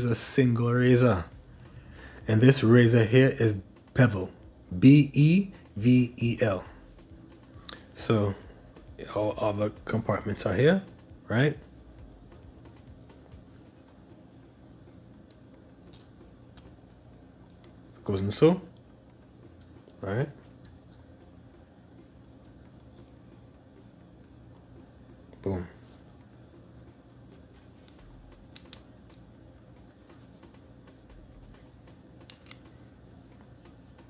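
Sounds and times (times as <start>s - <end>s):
low room hum: 0.0s - 34.0s
small metal parts clicking: 15.3s - 16.8s, 19.5s - 21.1s, 27.6s - 29.4s, 30.0s - 32.8s.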